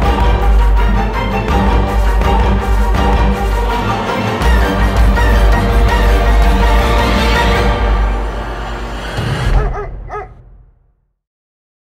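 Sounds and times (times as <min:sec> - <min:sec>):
deep music rumble: 0:00.0 - 0:10.8
dog yipping: 0:09.6 - 0:10.4.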